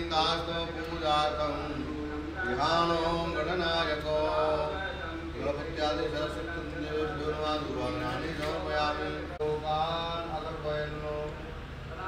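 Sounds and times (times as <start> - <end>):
man chanting mantras: 0.0 - 12.0.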